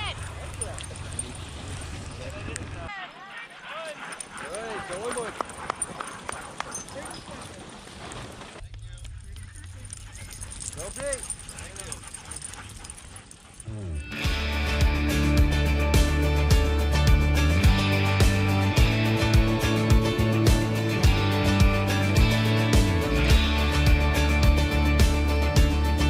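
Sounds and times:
light ticking patter: 0.0s - 2.8s, 3.7s - 13.8s
sled dogs yipping: 0.0s - 8.6s, 9.3s - 16.1s
spectators calling out: 2.6s - 7.8s
music: 14.0s - 26.0s.

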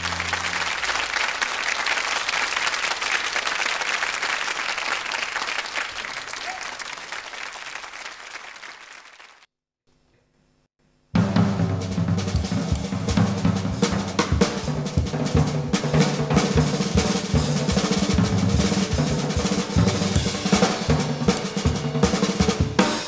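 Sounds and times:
double bass: 0.0s - 0.9s
piano: 0.0s - 1.0s
drum kit: 11.2s - 23.0s.

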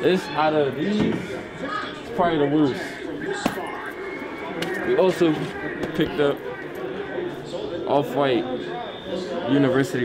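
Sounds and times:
faint voices: 0.0s - 10.0s
shop background noise: 0.0s - 10.0s.

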